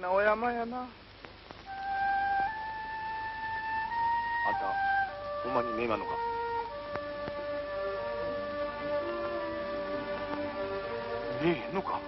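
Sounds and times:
flute long held notes: 1.7s - 12.0s.

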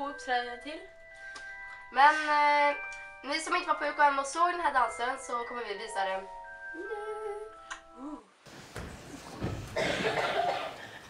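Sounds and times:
chime-like background music: 0.0s - 8.2s
person humming: 6.8s - 8.3s.

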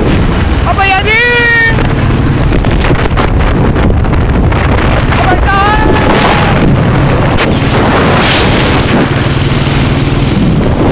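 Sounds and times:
motorcycle engine throbbing: 0.0s - 10.9s
wind buffeting microphone: 0.0s - 10.9s.

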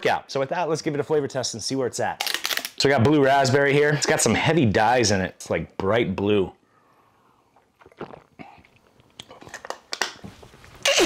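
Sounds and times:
man gulping and swallowing: 7.4s - 9.9s.

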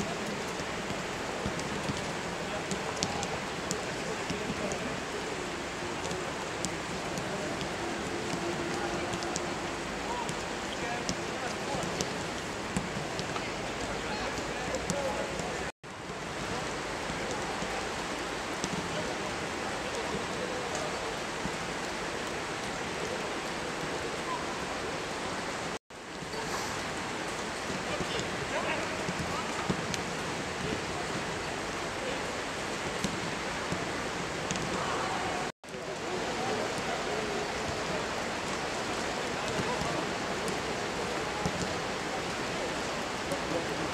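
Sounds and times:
steady rain hiss: 0.0s - 43.9s
rain hissing: 0.2s - 14.0s.

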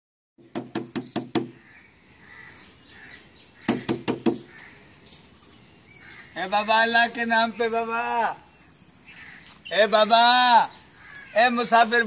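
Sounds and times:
hand knocking on metal: 3.7s - 4.5s.

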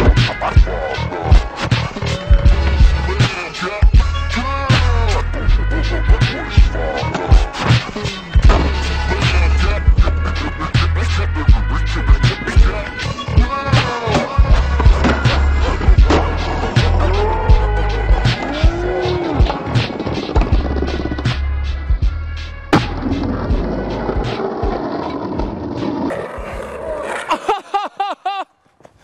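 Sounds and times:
hip hop beat with heavy bass: 0.0s - 27.0s.

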